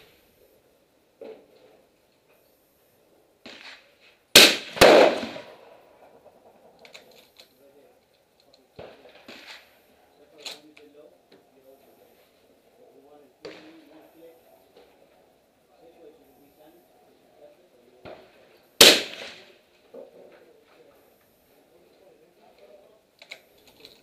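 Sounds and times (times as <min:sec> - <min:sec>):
suppressed rifle shots: 0:04.3 - 0:06.8, 0:18.8 - 0:19.5.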